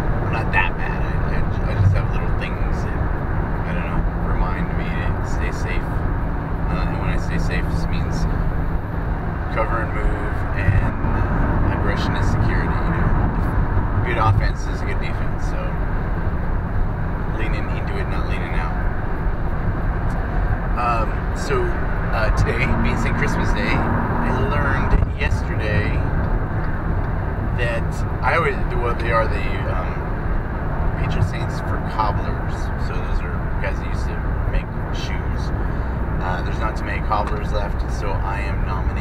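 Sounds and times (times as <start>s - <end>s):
car cabin road rumble: 0.0s - 39.0s
faint indistinct voice: 0.3s - 3.0s, 36.2s - 39.0s.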